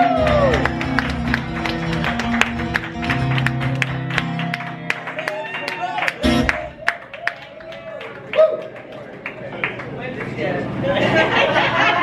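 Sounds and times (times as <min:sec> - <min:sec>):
acoustic guitar chords: 0:00.0 - 0:05.1, 0:06.2 - 0:06.8
crowd clapping along: 0:00.0 - 0:10.6.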